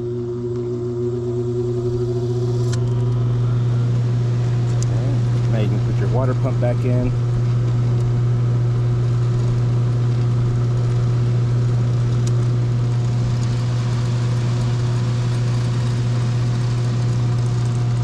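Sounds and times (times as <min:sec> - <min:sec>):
blower motor hum: 0:00.0 - 0:18.0.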